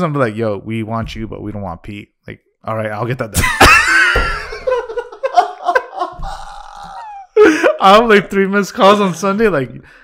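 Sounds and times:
men laughing: 3.4s - 8.3s.

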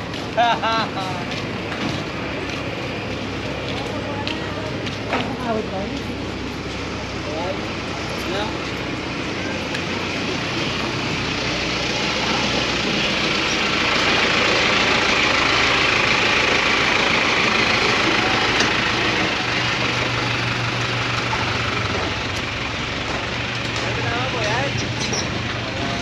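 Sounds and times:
vehicle engine running: 0.0s - 26.0s.

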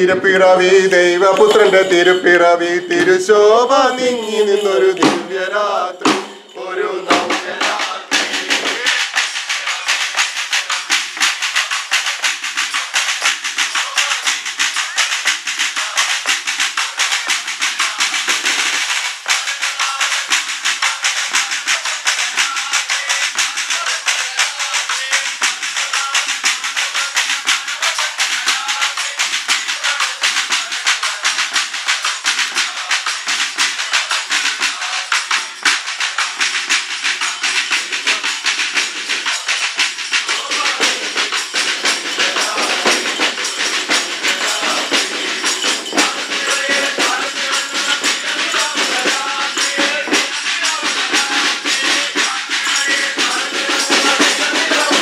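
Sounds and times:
shaker-like rattling clatter: 0.0s - 6.5s, 7.1s - 55.0s
fast drumming with sticks: 0.0s - 55.0s
group of voices singing carols: 0.0s - 55.0s.

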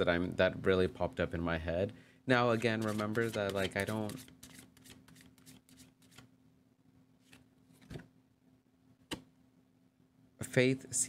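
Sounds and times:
cards being shuffled: 2.5s - 6.3s, 7.2s - 8.0s.

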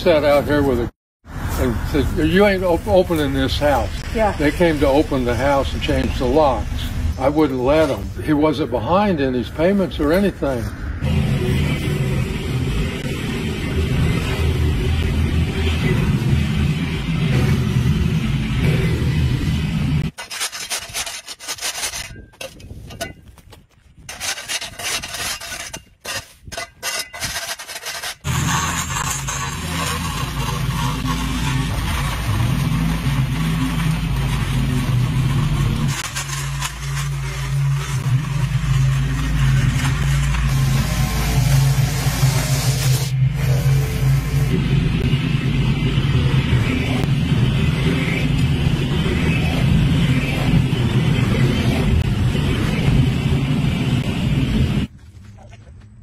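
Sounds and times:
riding mower engine running: 9.8s - 20.2s, 28.2s - 54.9s
steel scraper rasping on concrete: 20.1s - 23.2s, 24.0s - 44.5s
mower deck cutting grass: 27.3s - 44.5s.

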